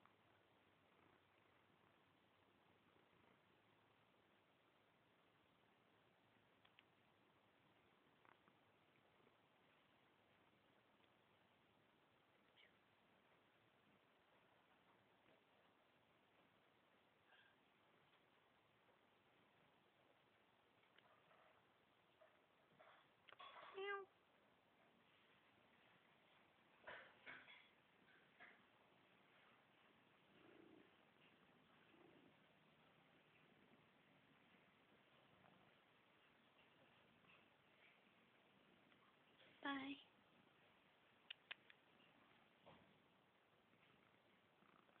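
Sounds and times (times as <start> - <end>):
cat purring: 0.0 - 45.0
faint clicks: 6.4 - 7.0, 41.1 - 42.5.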